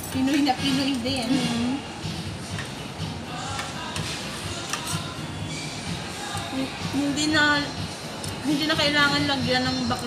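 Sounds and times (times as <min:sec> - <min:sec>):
background music: 0:00.0 - 0:10.0
fork clicking on plate: 0:04.6 - 0:05.1.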